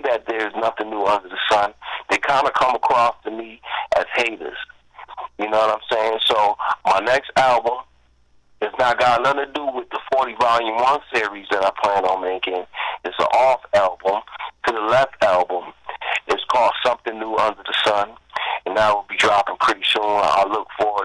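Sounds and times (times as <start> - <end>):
man talking over telephone: 0.0 - 8.0, 8.6 - 21.0.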